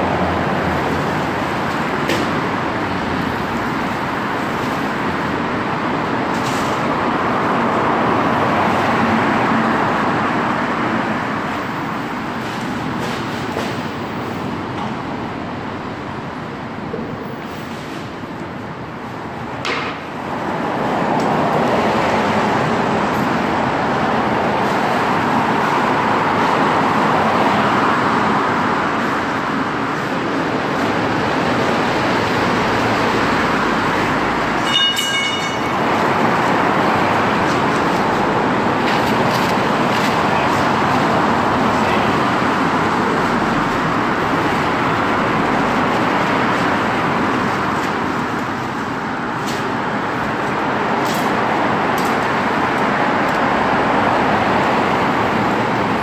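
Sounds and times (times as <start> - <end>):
road traffic passing: 0.0 - 56.0.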